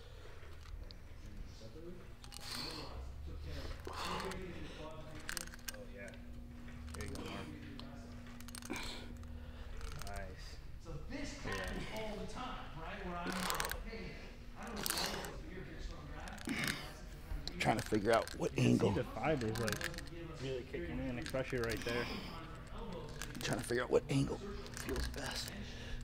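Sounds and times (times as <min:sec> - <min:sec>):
indistinct talking: 0:00.6 - 0:26.0.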